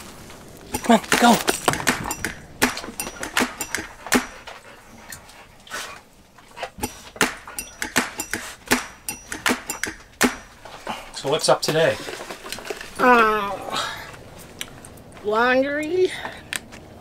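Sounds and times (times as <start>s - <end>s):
sharp clicks and taps: 0.7s - 4.6s, 6.8s - 10.6s.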